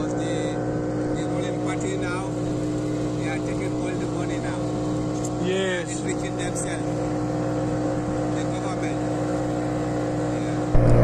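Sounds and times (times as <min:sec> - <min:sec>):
motorboat motor running: 0:00.0 - 0:11.0.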